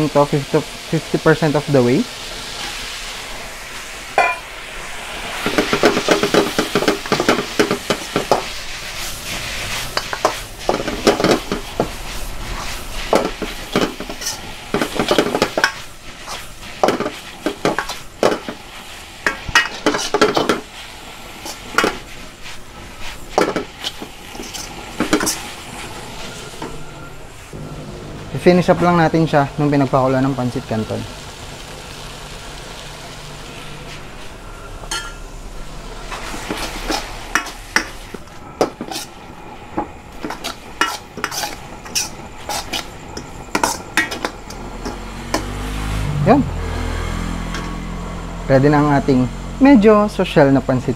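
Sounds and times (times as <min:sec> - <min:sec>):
food sizzling in a wok: 0:00.0 - 0:50.9
metal spoon scraping wok: 0:04.2 - 0:04.5, 0:05.3 - 0:27.5, 0:33.4 - 0:45.8, 0:47.1 - 0:48.2.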